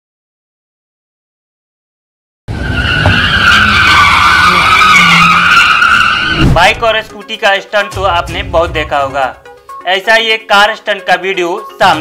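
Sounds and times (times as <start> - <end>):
tyres squealing: 2.6 - 7.0.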